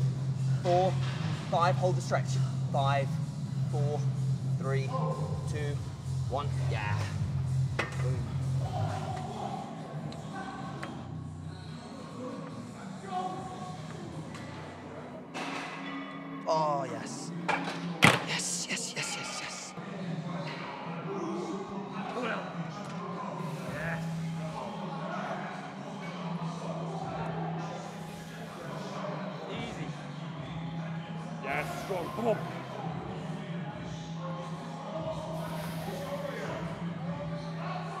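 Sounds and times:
indistinct voices: 0:18.1 - 0:19.8.

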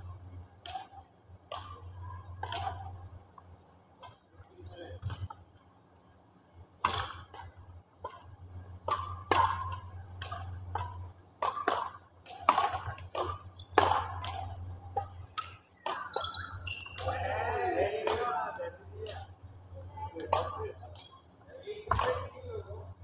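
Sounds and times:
steady low hum: 0:00.0 - 0:23.0
rackets striking shuttlecock: 0:00.6 - 0:03.1, 0:06.8 - 0:19.5, 0:20.2 - 0:21.1, 0:21.9 - 0:22.3.

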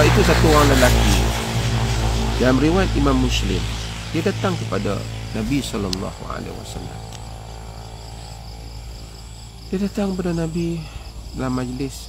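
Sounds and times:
insects chirping: 0:00.0 - 0:12.0
low steady hum: 0:00.0 - 0:12.0.

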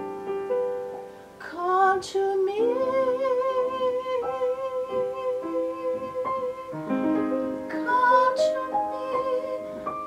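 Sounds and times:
piano chords: 0:00.0 - 0:10.0
soprano singing: 0:00.0 - 0:10.0.

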